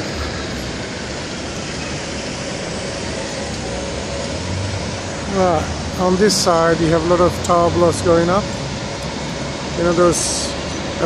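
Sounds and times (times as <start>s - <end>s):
bus and car engine rumble: 0.0s - 11.0s
city road traffic: 0.0s - 11.0s.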